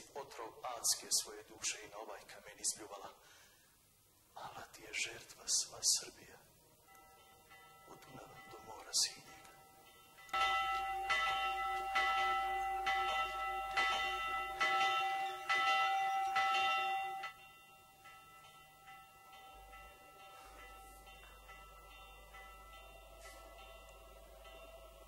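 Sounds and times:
church bells ringing: 0:00.0 - 0:03.0, 0:04.8 - 0:25.0.

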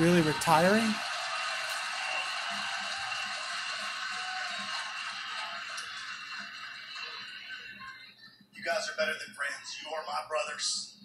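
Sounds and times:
music through television speaker: 0:00.0 - 0:11.0.

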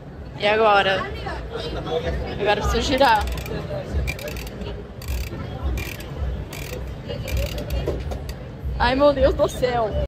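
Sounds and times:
ratchet mechanism clicking: 0:02.9 - 0:08.4.

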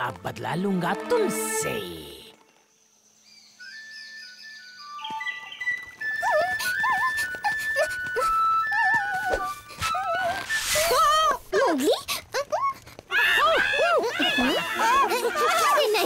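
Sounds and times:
bamboo flute melody: 0:03.6 - 0:11.4.

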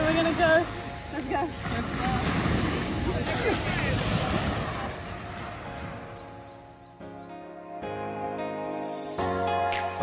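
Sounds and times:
soft background music: 0:00.0 - 0:02.8, 0:04.6 - 0:10.0
surf: 0:00.0 - 0:06.8.

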